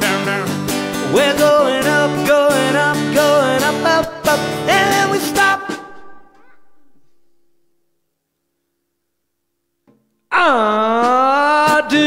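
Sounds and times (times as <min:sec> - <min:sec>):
man singing: 0:00.0 - 0:06.8, 0:10.3 - 0:12.0
acoustic guitar strumming: 0:00.0 - 0:08.0.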